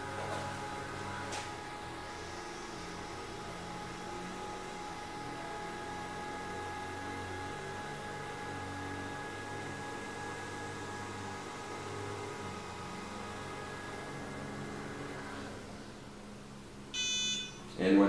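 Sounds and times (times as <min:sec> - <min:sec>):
steady motor whine: 0:00.0 - 0:17.7
lawnmowers running: 0:11.4 - 0:15.6.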